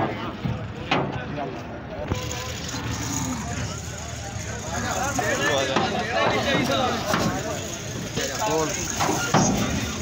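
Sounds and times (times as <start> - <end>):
men talking: 0.0 - 10.0
vehicle engine rumble: 0.0 - 10.0.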